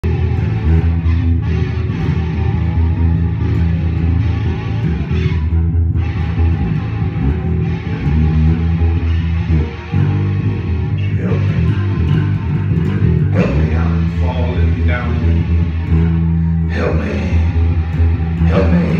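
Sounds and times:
strong bass line: 0:00.0 - 0:18.9.

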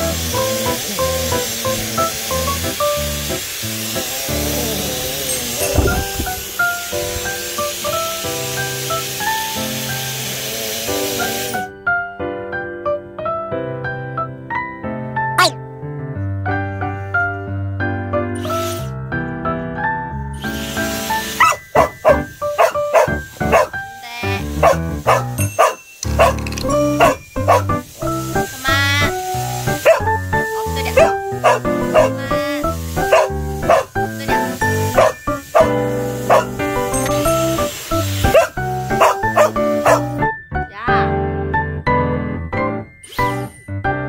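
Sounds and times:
background music: 0:00.0 - 0:44.0
dog barking: 0:21.4 - 0:23.7, 0:24.6 - 0:26.4, 0:27.0 - 0:27.7, 0:29.7 - 0:30.2, 0:30.9 - 0:32.2, 0:33.0 - 0:36.5, 0:38.3 - 0:40.2.

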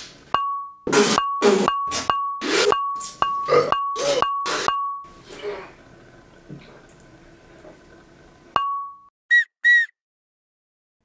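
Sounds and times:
short whistle notes: 0:09.3 - 0:10.0.

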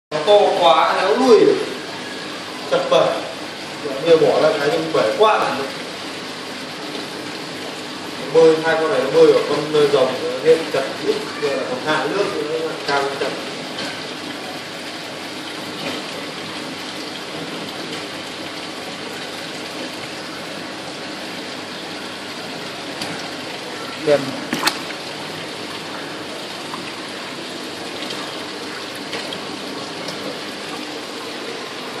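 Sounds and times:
running water: 0:00.1 - 0:32.0
person speaking: 0:23.8 - 0:24.8.

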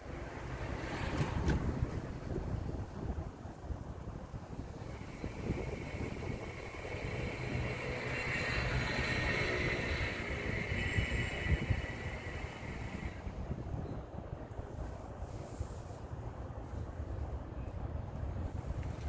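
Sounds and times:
wind gusting over microphone: 0:00.0 - 0:19.0
steady high-pitched hum: 0:03.0 - 0:15.7.

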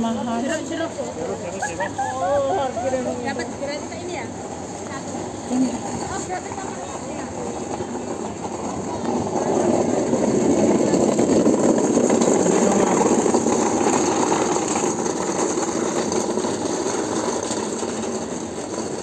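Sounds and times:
crowd voices: 0:00.0 - 0:14.5
hand trolley rattling on pavement: 0:00.0 - 0:19.0.

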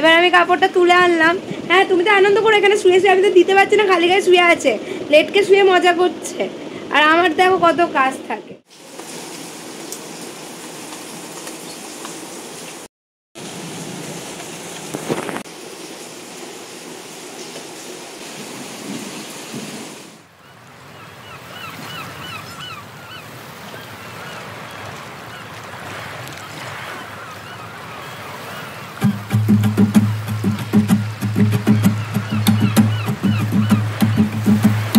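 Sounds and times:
steady rain falling: 0:08.7 - 0:20.3, 0:23.5 - 0:34.9.

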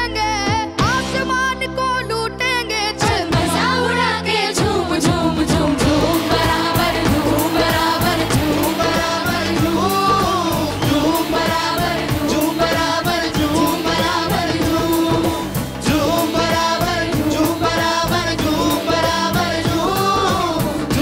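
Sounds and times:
young people singing pop song: 0:00.0 - 0:21.0
band with steady drum beat: 0:03.0 - 0:03.8, 0:04.6 - 0:21.0.

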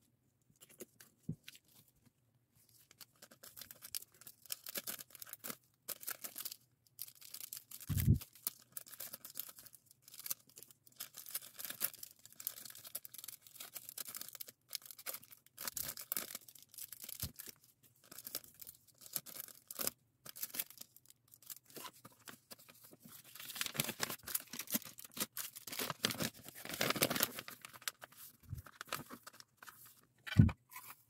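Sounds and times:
plastic bags crinkling: 0:21.4 - 0:29.6.

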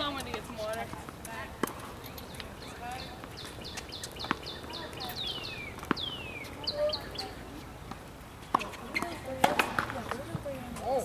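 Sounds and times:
songbird singing: 0:01.8 - 0:07.8.

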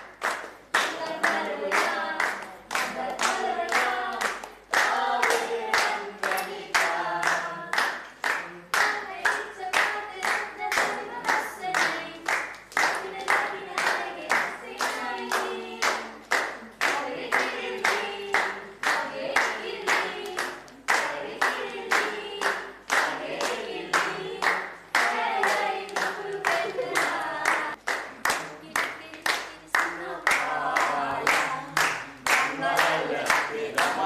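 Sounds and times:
clapped beat: 0:00.0 - 0:34.0
voices singing together: 0:00.7 - 0:34.0.

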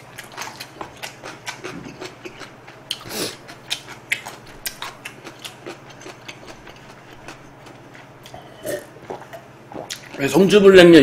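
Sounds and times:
man gulping water: 0:08.3 - 0:10.2.

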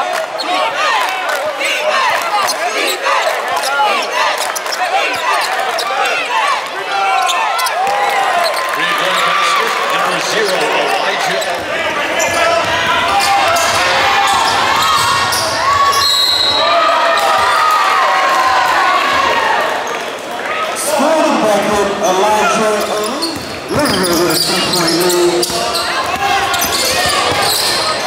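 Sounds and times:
crowd voices: 0:00.0 - 0:28.0
sneaker squeaks: 0:02.4 - 0:06.2, 0:07.0 - 0:09.6, 0:10.2 - 0:16.6, 0:22.6 - 0:28.0.

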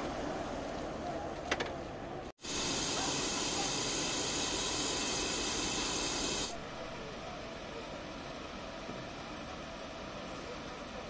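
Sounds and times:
pressurised gas hissing: 0:02.4 - 0:06.6.

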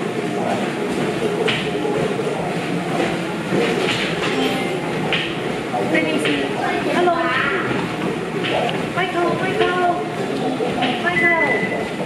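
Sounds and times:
treadmills running: 0:00.0 - 0:12.0.

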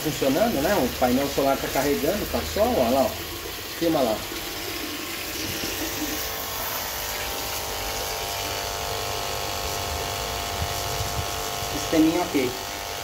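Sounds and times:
water jet spraying into tub: 0:00.0 - 0:13.0
water pump motor hum: 0:00.0 - 0:13.0.

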